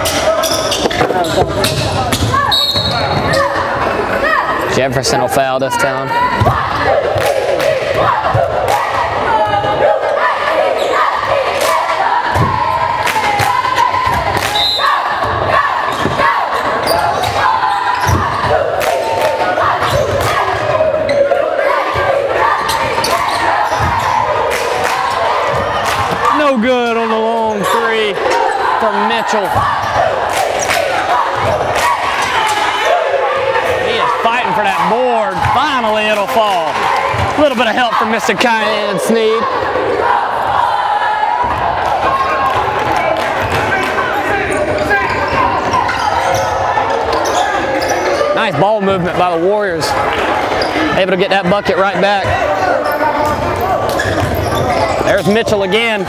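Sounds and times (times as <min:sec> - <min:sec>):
crowd talking and calling out: 0:00.0 - 0:56.0
loud shouts: 0:00.0 - 0:56.0.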